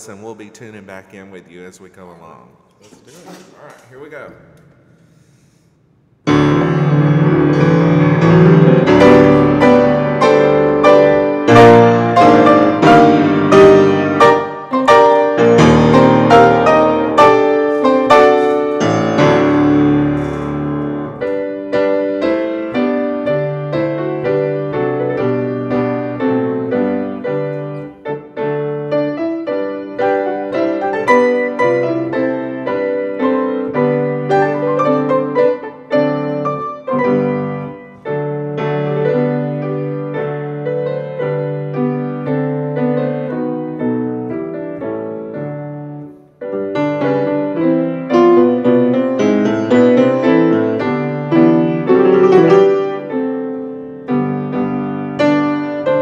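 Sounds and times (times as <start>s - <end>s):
piano duet: 0.0s - 56.0s.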